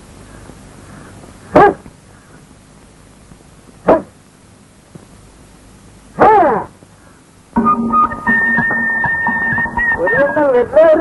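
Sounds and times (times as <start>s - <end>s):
faint steady hiss: 0.0s - 11.0s
dog barking: 1.5s - 1.9s, 3.8s - 4.2s, 6.2s - 6.7s.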